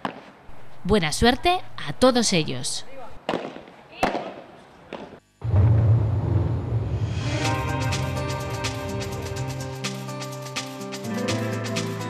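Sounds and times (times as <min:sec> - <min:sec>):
padel ball hit pops: 0:03.3 - 0:05.1.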